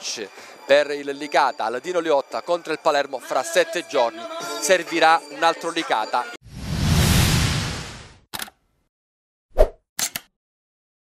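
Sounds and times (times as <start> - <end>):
noisy whoosh: 6.4 - 8.2.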